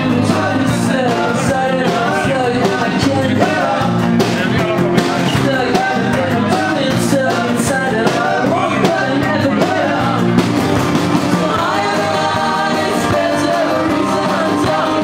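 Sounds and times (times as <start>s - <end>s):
man singing: 0.0s - 10.4s, 11.3s - 15.0s
strummed acoustic guitar: 0.0s - 15.0s.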